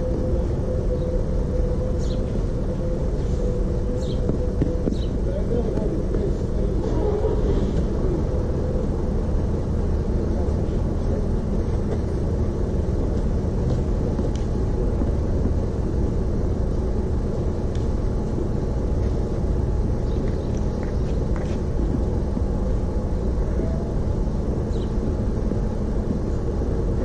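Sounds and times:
low outdoor rumble: 0:00.0 - 0:27.0.

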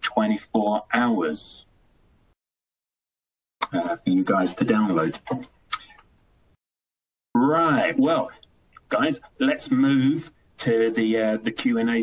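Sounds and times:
man speaking: 0:00.0 - 0:01.6, 0:03.6 - 0:05.9, 0:07.4 - 0:12.0.

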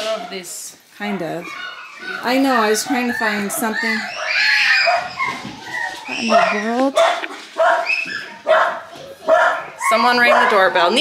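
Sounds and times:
dog whining: 0:01.0 - 0:11.0.

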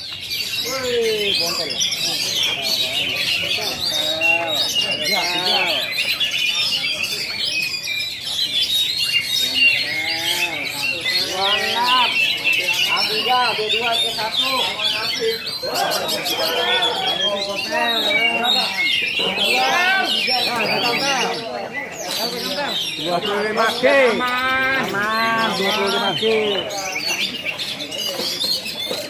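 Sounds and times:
men calling and shouting: 0:00.0 - 0:07.5, 0:08.3 - 0:29.0
songbirds chirping and trilling: 0:00.0 - 0:29.0.

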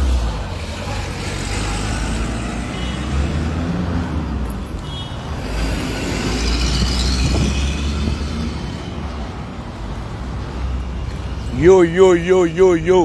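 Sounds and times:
low road rumble: 0:00.0 - 0:13.0.

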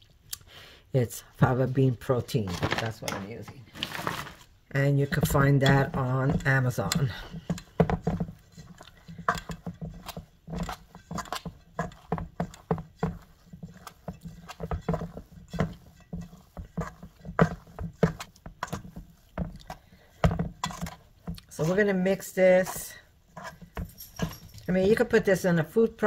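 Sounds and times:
hands kneading dough: 0:01.3 - 0:26.0.

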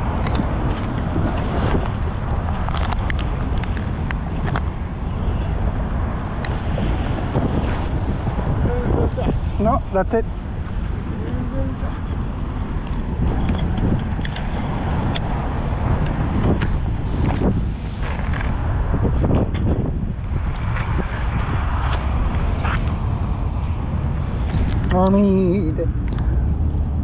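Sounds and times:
road traffic rushing: 0:00.0 - 0:27.0
wind buffeting microphone: 0:00.0 - 0:27.0.

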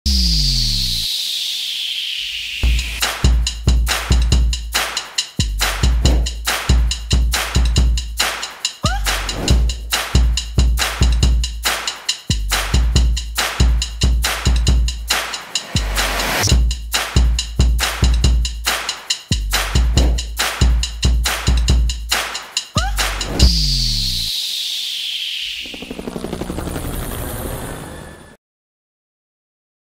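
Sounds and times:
hissing whoosh falling in pitch: 0:00.1 - 0:03.0, 0:23.5 - 0:25.9
rapid fluttering low buzz: 0:25.5 - 0:27.6.

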